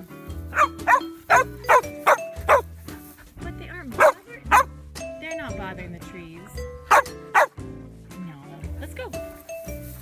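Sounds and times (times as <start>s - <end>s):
jazz music: 0.0s - 10.0s
dog barking: 0.5s - 2.6s, 4.0s - 4.7s, 6.9s - 7.6s.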